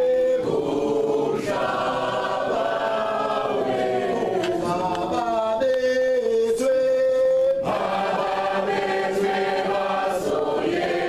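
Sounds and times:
crowd singing together: 0.0 - 6.6, 7.6 - 11.0.

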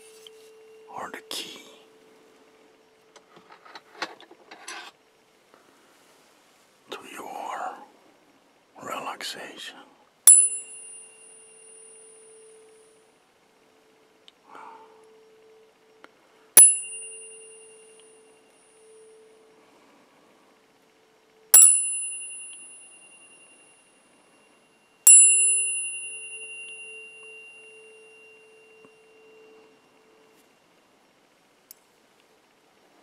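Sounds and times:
tuning fork low pure tone: 0.0 - 3.2, 10.2 - 31.0
tuning forks struck ringing: 10.3 - 13.1, 16.6 - 19.6, 21.5 - 30.5.

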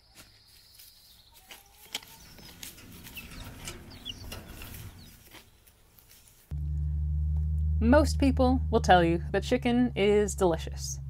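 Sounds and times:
chickens clucking: 1.3 - 6.2
low rumbling background: 6.5 - 11.0.

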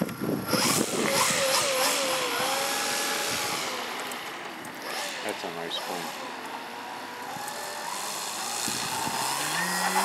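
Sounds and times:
model airplane motor humming: 0.0 - 10.0.

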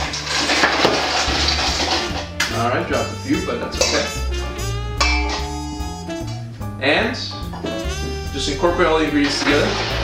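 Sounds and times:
ice splashing into liquid: 0.0 - 2.6
ice cubes clattering on metal: 0.0 - 2.7.

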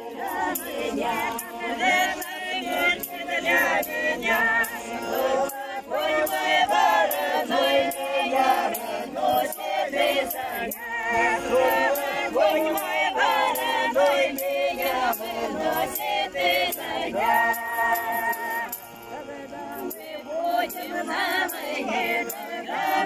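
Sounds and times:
accordion: 0.0 - 23.0
women's choir singing: 0.0 - 23.0.

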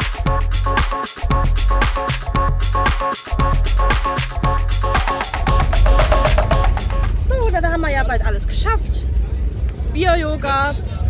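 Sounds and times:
wind rumbling on microphone: 5.4 - 11.0.

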